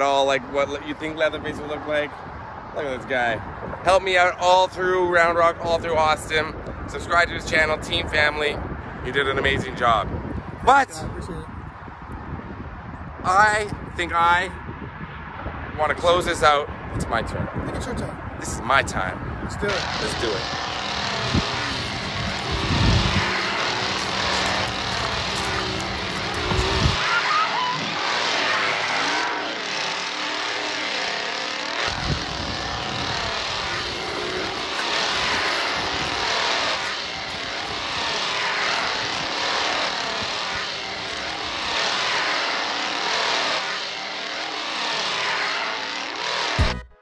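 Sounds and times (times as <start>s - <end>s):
chainsaw engine revving: 19.7s - 46.8s.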